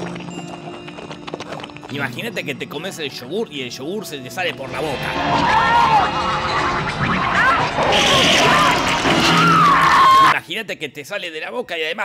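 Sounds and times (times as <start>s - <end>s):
horror film music: 0.0s - 10.3s.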